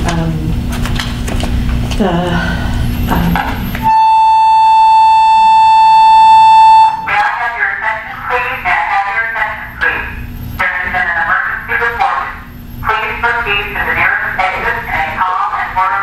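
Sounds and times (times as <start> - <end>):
loud electronic beep tone: 3.9 - 7.4.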